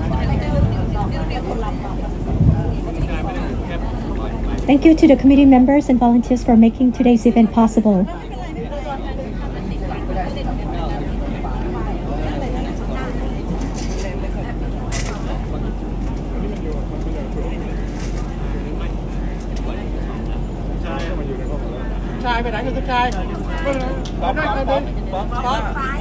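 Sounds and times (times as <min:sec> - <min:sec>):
babble of voices: 0:00.0 - 0:26.0
steady low hum: 0:00.0 - 0:26.0.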